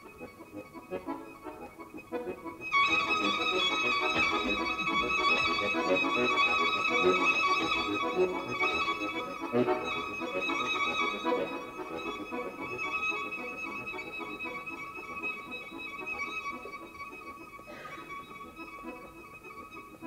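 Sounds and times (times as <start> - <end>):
button accordion: 0.0 - 20.0
violin: 0.0 - 20.0.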